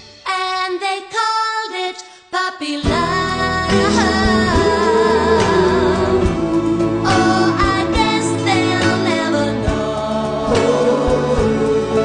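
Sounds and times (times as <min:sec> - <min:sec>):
instrumental music: 0:02.8 - 0:12.0.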